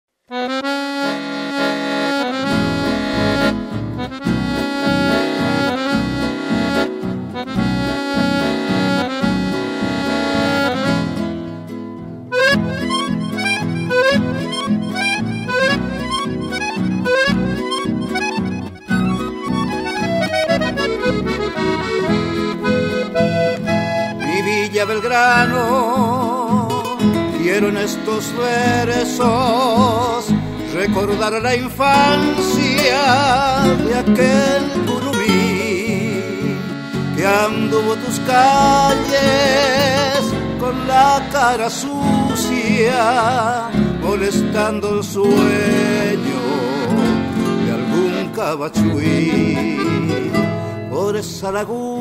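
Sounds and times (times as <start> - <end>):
accordion melody: 0.3 - 52.0
acoustic guitar bass rhythm: 1.2 - 52.0.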